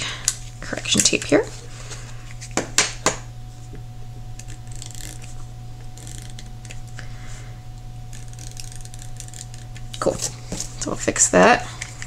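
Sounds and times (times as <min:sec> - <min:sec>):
steady low hum: 0:00.0 - 0:12.0
correction tape scraping paper: 0:04.4 - 0:06.8, 0:08.1 - 0:10.5
small gears ticking: 0:04.6 - 0:05.2, 0:06.0 - 0:06.5, 0:08.1 - 0:09.9.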